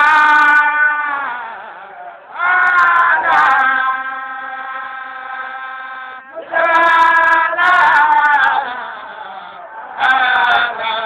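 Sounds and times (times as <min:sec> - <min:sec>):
people chanting: 0:00.0 - 0:11.0.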